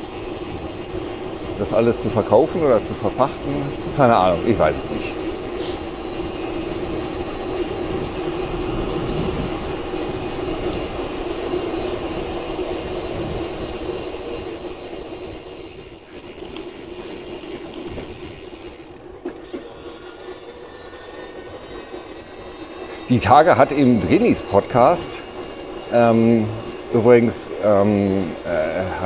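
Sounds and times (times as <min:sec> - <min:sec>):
electric bike motor whining: 0:00.0 - 0:29.0
wind rumbling on microphone: 0:00.0 - 0:29.0.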